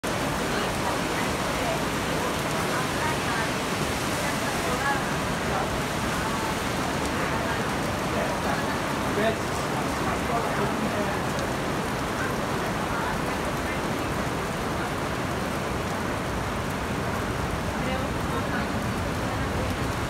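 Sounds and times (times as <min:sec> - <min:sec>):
heavy rain on street: 0:00.0 - 0:20.0.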